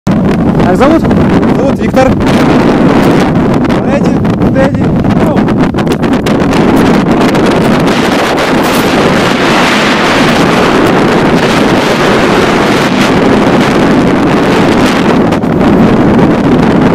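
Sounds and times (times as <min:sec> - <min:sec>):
wind buffeting microphone: 0:00.1 - 0:16.9.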